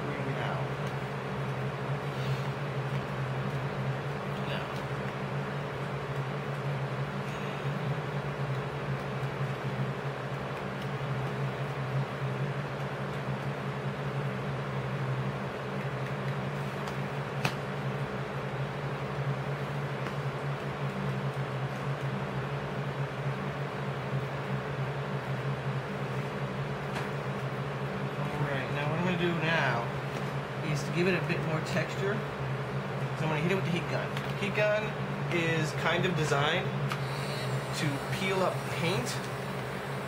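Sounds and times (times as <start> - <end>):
low mechanical hum: 0.0 - 40.0.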